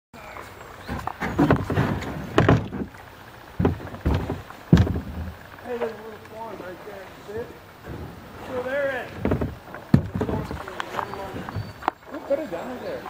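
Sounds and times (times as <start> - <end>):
paddle splashing in water: 0.3 - 5.4, 7.8 - 12.4.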